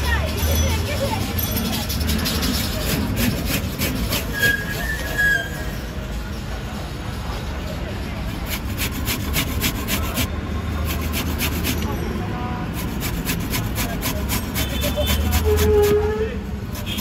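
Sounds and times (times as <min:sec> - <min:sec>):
carrot rasping on a grater: 0:01.6 - 0:05.6, 0:08.4 - 0:12.0, 0:12.7 - 0:17.0.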